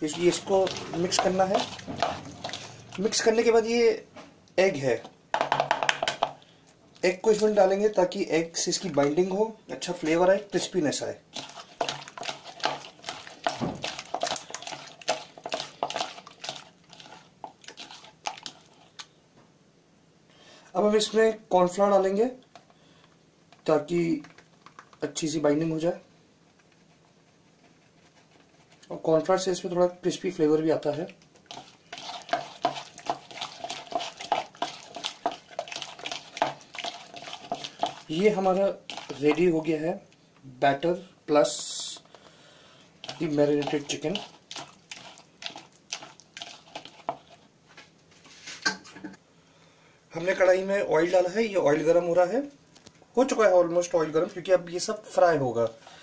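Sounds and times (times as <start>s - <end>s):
hand squelching raw chicken: 0.0s - 3.4s, 11.3s - 19.1s, 31.0s - 39.8s, 43.0s - 47.5s.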